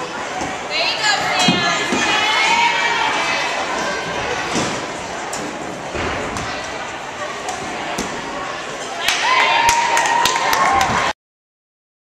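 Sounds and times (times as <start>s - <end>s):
spectators chattering: 0.0s - 11.1s.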